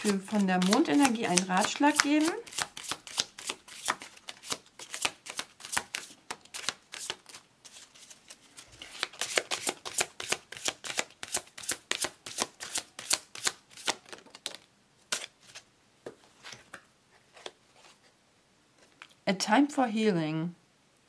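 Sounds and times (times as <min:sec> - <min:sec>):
cards being shuffled by hand: 0:00.0 - 0:18.0.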